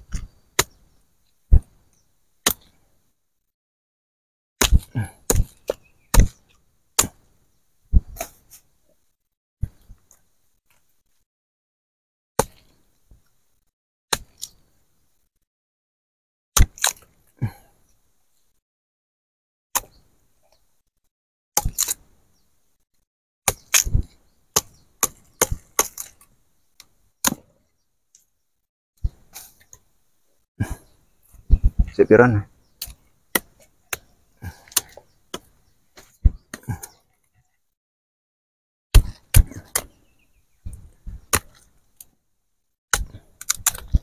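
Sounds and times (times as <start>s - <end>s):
machete chopping: 0.6s - 0.8s, 2.4s - 2.7s, 4.6s - 7.3s, 16.6s - 17.0s, 21.6s - 22.0s, 23.5s - 26.2s, 27.2s - 27.5s, 32.9s - 35.5s, 39.0s - 40.0s, 41.1s - 41.6s, 42.9s - 44.0s.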